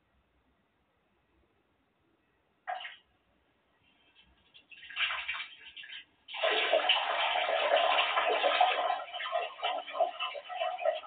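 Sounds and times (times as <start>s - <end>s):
water running from tap: 4.5s - 11.0s.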